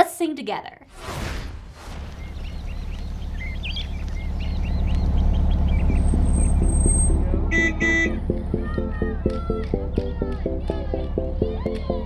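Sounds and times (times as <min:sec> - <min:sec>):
engine low rumble: 0:02.0 - 0:11.9
car horn tooting: 0:07.5 - 0:08.2.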